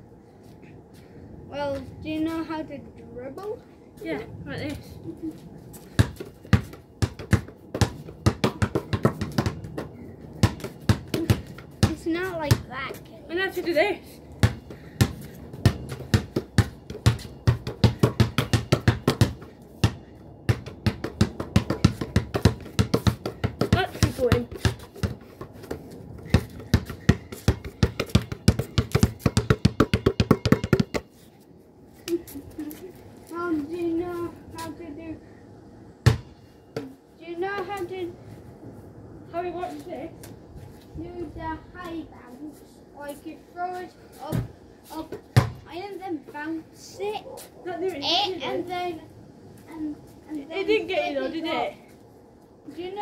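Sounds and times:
people talking: 1.5s - 5.4s, 11.2s - 14.1s, 23.7s - 24.6s, 32.1s - 35.2s, 37.2s - 38.1s, 39.3s - 40.2s, 41.0s - 45.1s, 45.7s - 49.0s, 49.7s - 51.8s, 52.7s - 53.0s
basketball bouncing on concrete: 5.8s - 13.0s, 14.4s - 31.1s, 36.0s - 37.8s, 44.3s - 45.8s.

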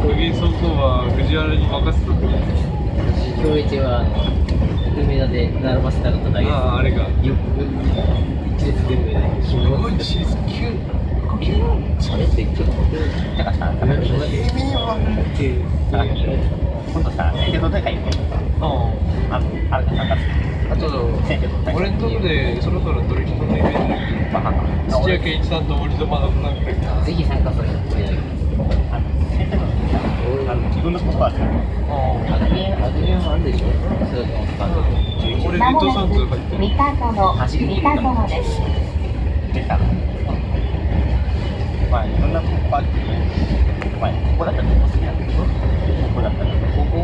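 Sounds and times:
electric train rumbling: 0.0s - 47.0s
people talking and laughing: 0.0s - 47.0s.

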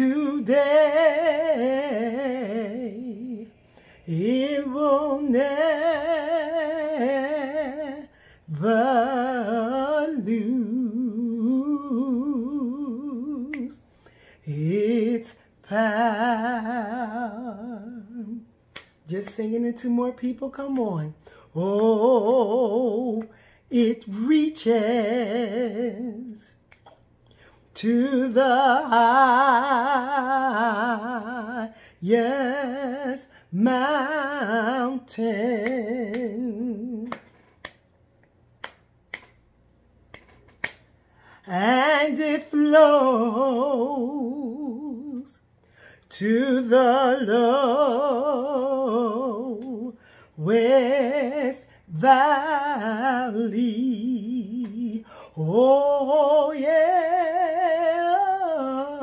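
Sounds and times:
woman singing unaccompanied hymn: 0.0s - 13.8s, 14.4s - 26.5s, 27.7s - 37.4s, 41.5s - 45.4s, 46.1s - 59.0s
finger snaps: 13.4s - 14.2s, 18.7s - 19.4s, 26.6s - 27.5s, 35.6s - 36.4s, 37.0s - 40.9s.

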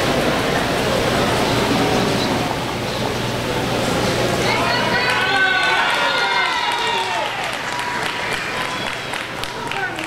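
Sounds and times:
indistinct crowd voices: 0.0s - 10.0s.

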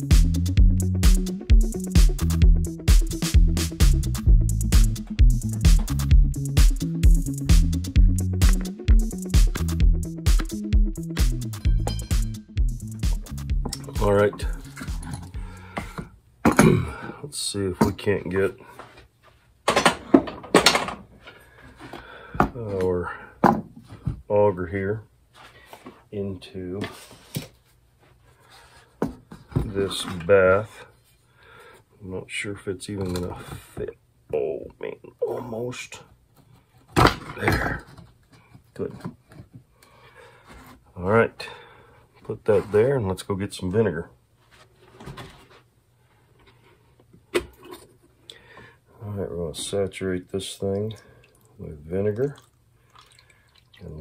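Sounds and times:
faint handling sounds: 25.3s - 32.2s, 43.9s - 48.3s.

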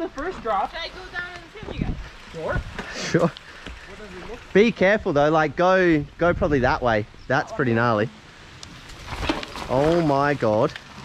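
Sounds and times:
tyres crunching on dirt: 0.0s - 11.0s.

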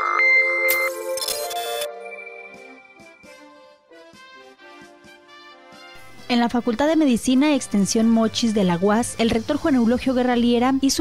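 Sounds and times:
quiet instrumental music: 0.9s - 11.0s.

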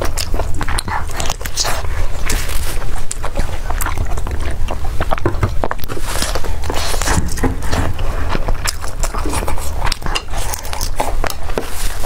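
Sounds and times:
wet chewing mouth sounds: 0.0s - 12.0s.

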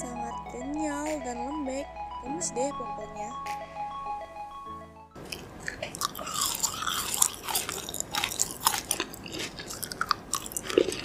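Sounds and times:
chewing gummy candy: 5.2s - 11.0s.

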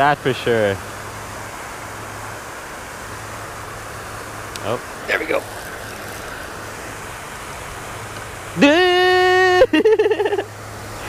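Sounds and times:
fountain spray rushing: 0.0s - 11.0s
man's high vocal cry: 8.6s - 9.8s
man laughing: 8.6s - 10.5s.

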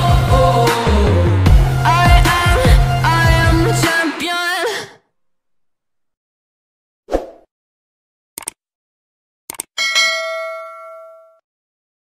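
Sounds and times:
bright bell ding: 9.8s - 11.4s.

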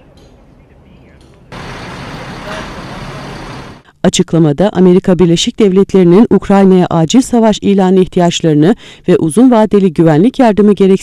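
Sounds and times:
vehicle engine humming: 0.0s - 3.9s.

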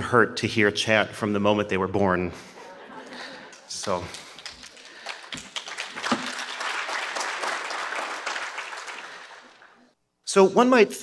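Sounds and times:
audience applauding: 2.9s - 10.0s.

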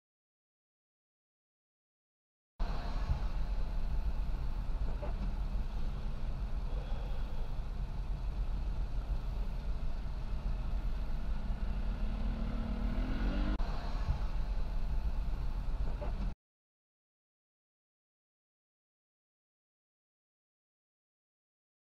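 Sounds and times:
traffic rumble and tyre noise: 2.6s - 16.4s
engine revving up: 11.1s - 14.8s.

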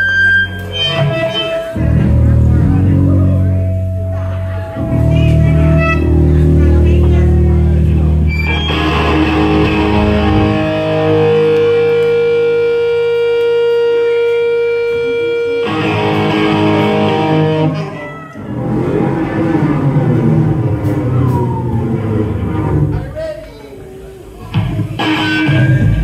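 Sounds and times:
ringing guitar chord: 1.8s - 20.7s
ska-punk band playing live: 4.0s - 23.5s, 24.5s - 26.0s.

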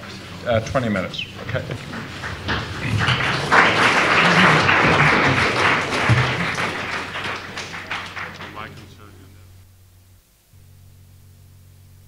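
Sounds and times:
audience applauding: 0.0s - 9.4s.

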